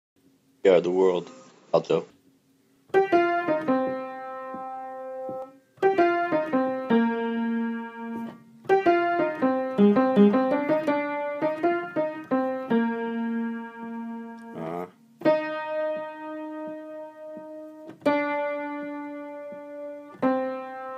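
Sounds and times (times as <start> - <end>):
slow piano notes and chords: 2.9 - 20.9.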